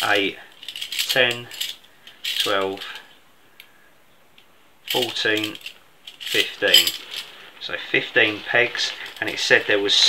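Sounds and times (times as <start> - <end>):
metal tent pegs clinking: 0.0 - 3.0, 4.9 - 10.0.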